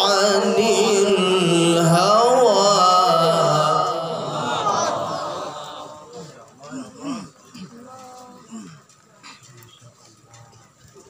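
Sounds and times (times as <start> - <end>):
faint human voices: 3.6 - 11.0.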